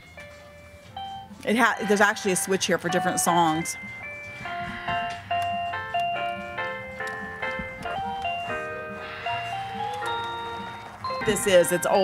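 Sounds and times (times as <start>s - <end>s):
electronic chime melody: 0.0s - 12.0s.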